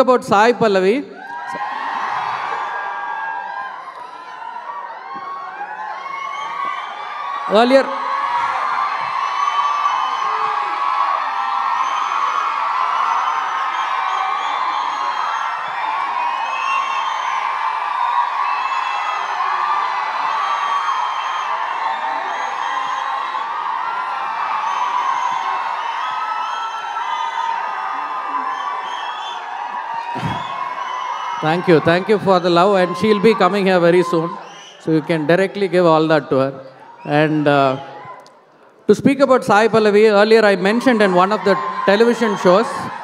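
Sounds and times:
crowd cheering and whooping: 1.1s - 43.0s.

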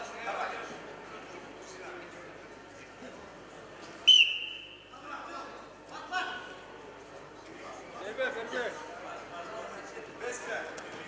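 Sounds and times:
referee's whistle blast: 4.1s - 4.9s.

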